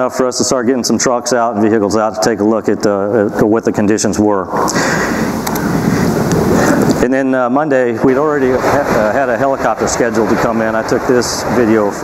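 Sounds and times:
helicopter noise: 0:04.3 - 0:12.0
wind buffeting microphone: 0:04.3 - 0:12.0.

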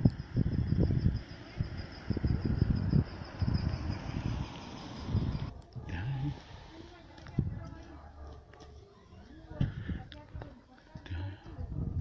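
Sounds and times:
high-pitched pulsing whine: 0:00.0 - 0:05.5
wind buffeting microphone: 0:00.0 - 0:06.3, 0:07.2 - 0:07.9, 0:11.4 - 0:12.0.

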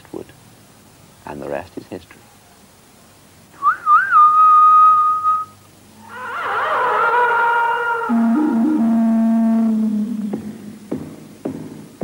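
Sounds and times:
high whistling: 0:03.6 - 0:05.6.

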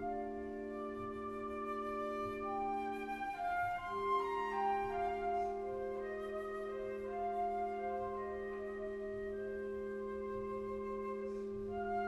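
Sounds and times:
orchestra playing: 0:00.0 - 0:12.0
woodwind melody: 0:00.0 - 0:12.0.

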